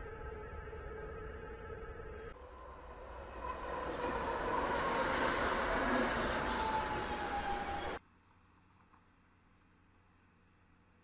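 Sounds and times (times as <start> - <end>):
diesel locomotive approaching: 0.1 - 8.0
high squeal of train wheels: 2.4 - 8.0.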